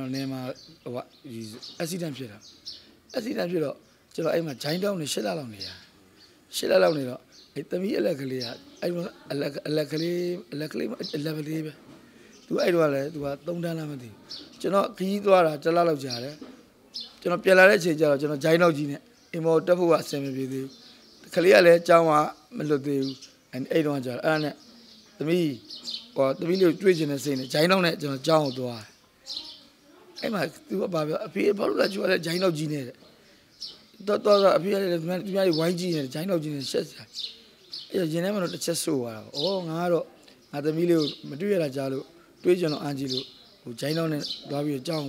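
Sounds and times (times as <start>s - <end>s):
man talking: 0.0s - 2.4s, 3.1s - 5.8s, 6.5s - 11.8s, 12.5s - 16.4s, 17.2s - 24.6s, 25.2s - 25.6s, 26.2s - 28.9s, 30.2s - 33.0s, 34.0s - 37.2s, 37.9s - 45.0s
man speaking into microphone: 6.5s - 11.8s, 12.5s - 16.4s, 17.2s - 20.7s, 21.3s - 24.6s, 26.2s - 28.9s, 30.2s - 33.0s, 34.0s - 37.2s, 37.9s - 45.0s.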